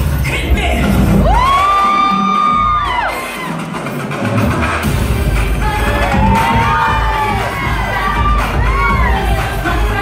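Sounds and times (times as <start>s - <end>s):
loud dance music: 0.0s - 10.0s
crowd cheering: 1.1s - 4.4s, 5.6s - 10.0s.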